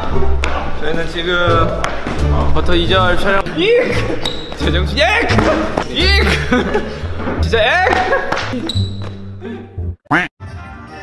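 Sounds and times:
people talking and laughing: 0:03.4 - 0:08.8.

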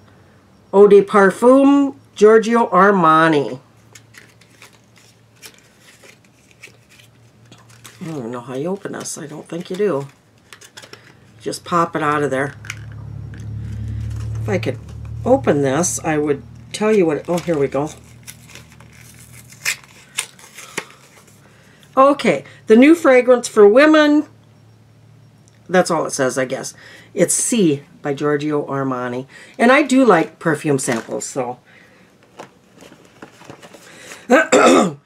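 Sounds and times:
packaging clicks and crinkles: 0:03.8 - 0:11.4, 0:12.5 - 0:15.2, 0:16.7 - 0:21.9, 0:32.2 - 0:34.3.

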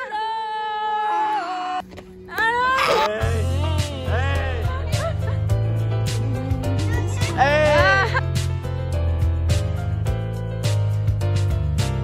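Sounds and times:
person wailing playfully: 0:06.3 - 0:08.2.

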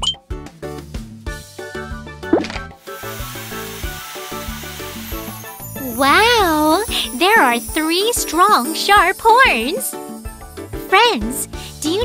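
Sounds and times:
bouncy cartoon music: 0:00.0 - 0:12.0
hissing sparkle shimmer: 0:02.8 - 0:12.0.

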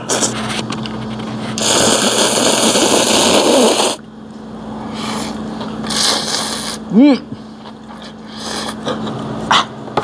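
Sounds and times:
noodles being slurped: 0:01.5 - 0:04.0, 0:05.0 - 0:06.8, 0:07.9 - 0:08.9.

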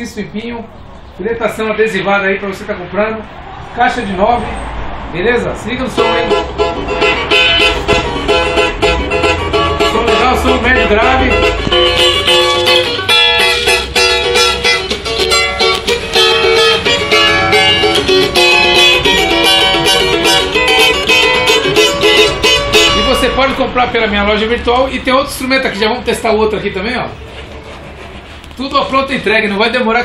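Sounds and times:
cavaquinho strummed: 0:05.9 - 0:25.1.

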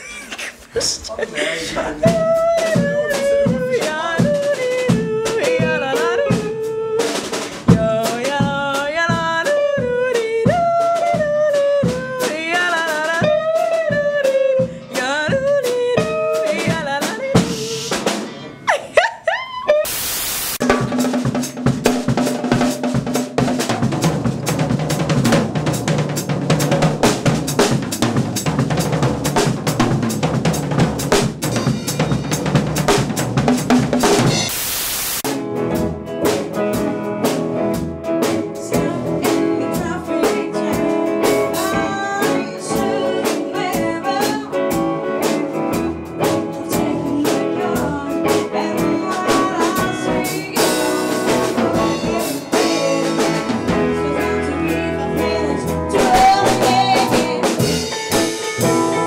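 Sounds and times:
band playing drums bass guitar: 0:00.8 - 0:18.7, 0:19.7 - 0:59.0
woman singing: 0:01.4 - 0:18.0, 0:38.1 - 0:58.0.

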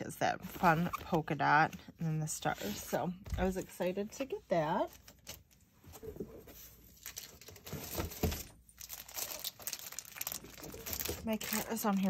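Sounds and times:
plastic packaging crinkling: 0:06.9 - 0:12.0.

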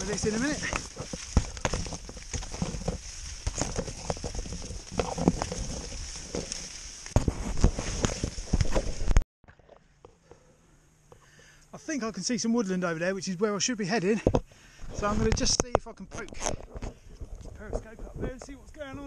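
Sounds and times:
corn stalks rustling and snapping: 0:00.0 - 0:09.2
leaves knocking on camera: 0:00.0 - 0:09.2, 0:15.0 - 0:19.0.

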